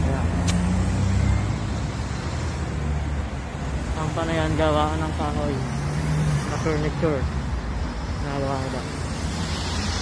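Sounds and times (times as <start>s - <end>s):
sharp click: 0.4s - 0.7s.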